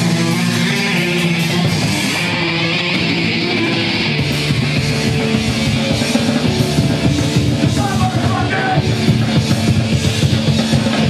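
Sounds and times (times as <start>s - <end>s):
bass guitar: 0.0s - 11.0s
distorted electric guitar: 0.0s - 11.0s
drums: 0.0s - 11.0s.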